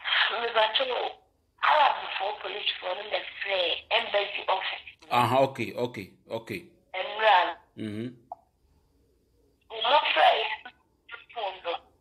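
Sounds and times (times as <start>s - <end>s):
person talking: 5.0s - 6.6s, 7.8s - 8.2s.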